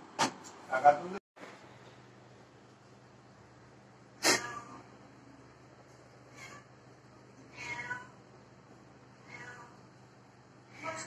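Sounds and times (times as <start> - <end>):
cat meowing: 4.2 - 4.9, 6.3 - 6.8, 7.5 - 8.2, 9.2 - 9.8.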